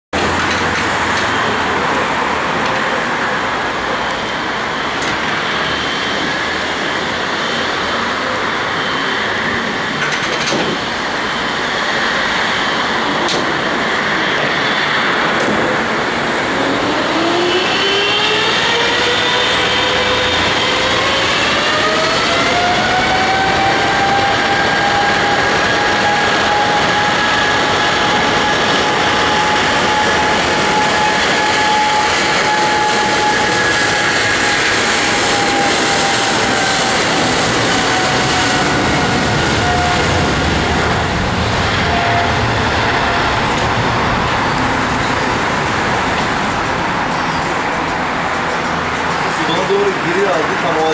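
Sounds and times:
jet engine whine rising: 0.1 - 50.9
rushing jet noise: 0.1 - 50.9.

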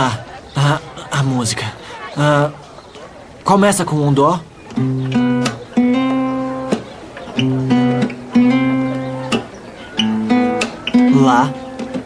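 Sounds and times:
acoustic guitar strumming chords: 4.7 - 12.0.

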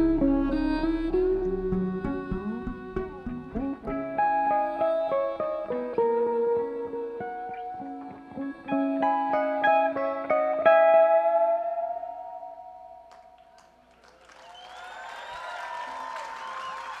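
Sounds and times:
plucked strings playing: 0.0 - 13.4
audience cheering and applauding: 13.1 - 17.0.

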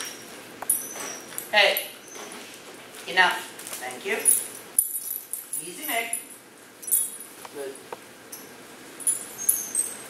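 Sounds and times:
dog tags clinking: 0.0 - 2.0, 4.0 - 7.4, 8.3 - 10.0.

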